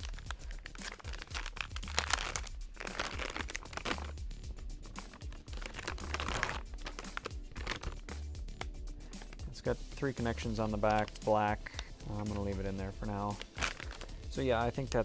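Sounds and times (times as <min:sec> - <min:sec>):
plastic bag crinkling: 0:00.0 - 0:04.2, 0:05.0 - 0:08.1, 0:13.2 - 0:14.3
background music with low beat: 0:00.0 - 0:15.0.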